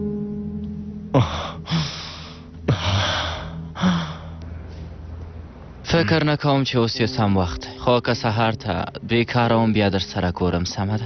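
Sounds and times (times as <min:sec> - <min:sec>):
man gasping in pain: 0:01.2 - 0:04.4.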